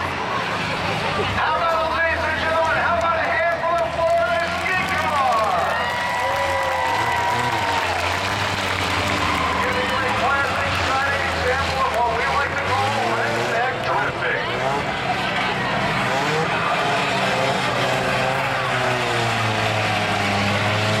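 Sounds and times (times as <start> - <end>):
crowd chatter: 0.0 - 21.0
race car engine running: 0.0 - 21.0.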